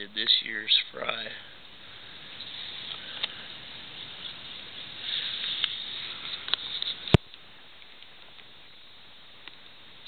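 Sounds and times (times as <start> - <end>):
rustling and scraping handling: 2.4 - 7.2.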